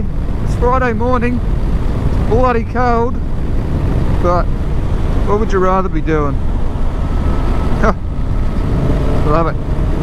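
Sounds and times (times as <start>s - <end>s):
motorcycle engine running: 0.0s - 10.0s
wind noise: 0.0s - 10.0s.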